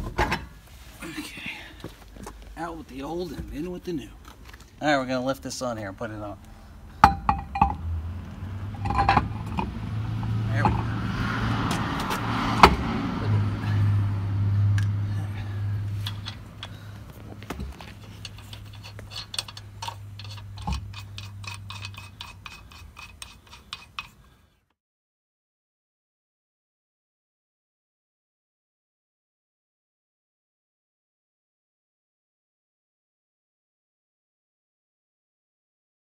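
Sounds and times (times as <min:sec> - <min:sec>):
low steady hum: 0:00.0 - 0:11.0
metal lug nuts clinking: 0:06.2 - 0:07.9, 0:08.6 - 0:11.0, 0:14.7 - 0:24.4
wheel knocking onto hub: 0:07.0 - 0:07.9.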